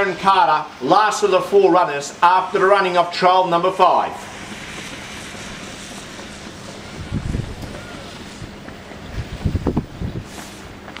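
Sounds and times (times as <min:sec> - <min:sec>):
steady hiss: 0:00.0 - 0:11.0
wind buffeting microphone: 0:04.5 - 0:11.0.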